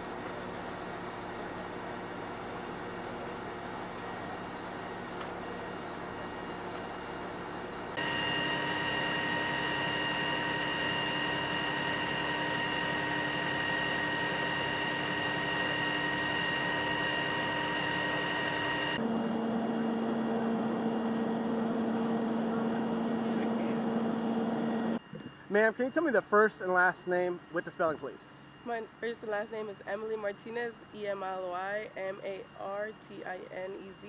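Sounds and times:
engine and water pump drone: 0.0 - 34.0
high whine: 0.0 - 34.0.

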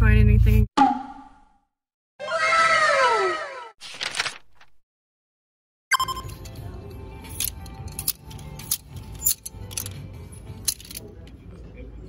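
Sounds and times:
background music: 5.9 - 12.0.

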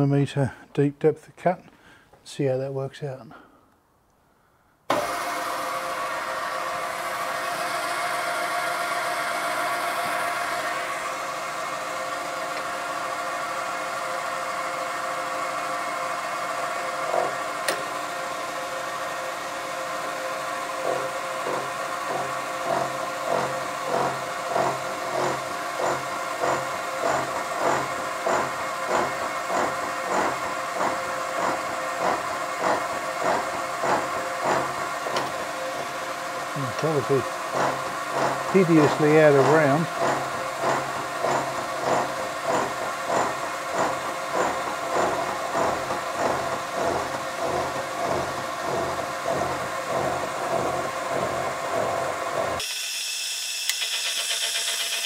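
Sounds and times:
milling machine running: 4.9 - 55.0
milling cutter pulsing: 20.8 - 55.0.

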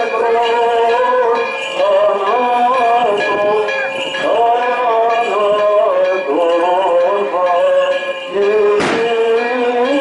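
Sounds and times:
sharp crack: 8.8 - 9.1.

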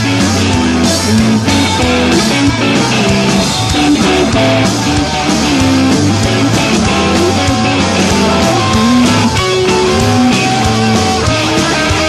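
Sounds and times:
bass guitar: 0.0 - 12.0
electric guitars: 0.0 - 12.0
steady drum beat: 0.0 - 12.0.

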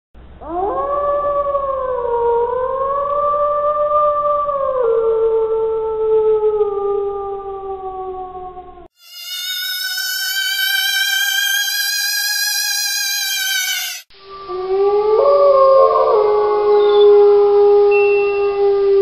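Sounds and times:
long wavering howl: 9.8 - 19.0.

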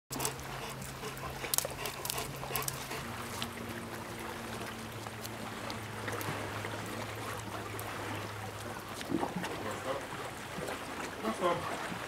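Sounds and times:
dog panting: 0.1 - 3.5
steady low hum: 0.1 - 12.0.

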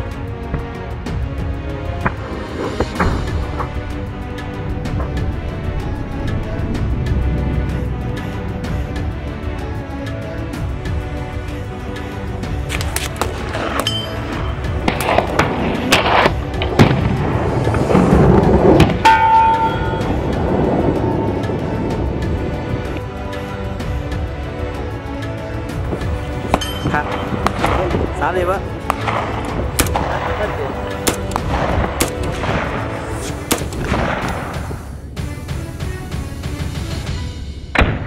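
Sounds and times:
background music: 0.0 - 38.0
sharp gunshot cracks: 28.9 - 30.4, 31.0 - 34.7.

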